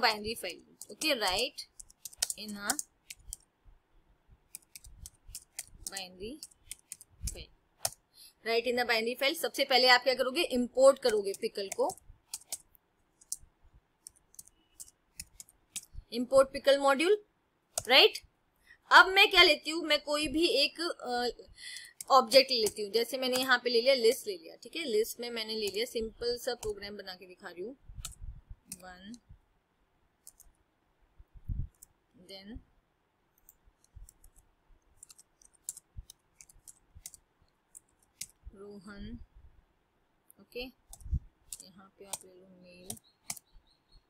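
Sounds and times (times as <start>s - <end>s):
keyboard key clicks: 0.8s - 3.5s.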